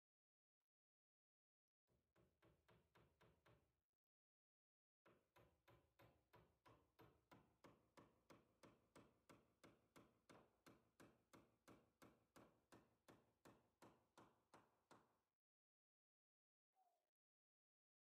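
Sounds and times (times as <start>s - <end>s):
hammer driving nail into wood: 5.1s - 15.2s.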